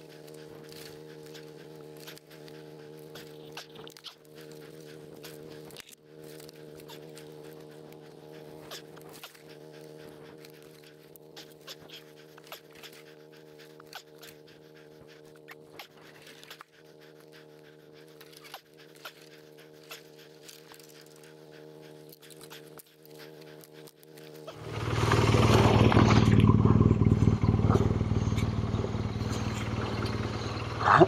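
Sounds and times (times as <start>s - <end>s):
heavy breathing: 0.0s - 26.5s
steady low hum: 0.0s - 31.0s.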